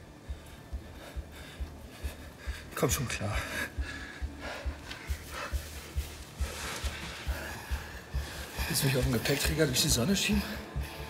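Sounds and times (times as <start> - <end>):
person breathing heavily: 0.0 - 8.8, 10.4 - 11.0
film score with low pulse: 0.0 - 11.0.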